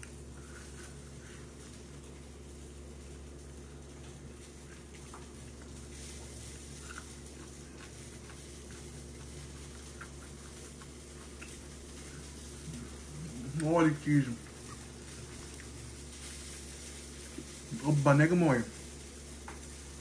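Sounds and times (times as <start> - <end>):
person chewing: 0.0 - 17.7
low room hum: 0.0 - 20.0.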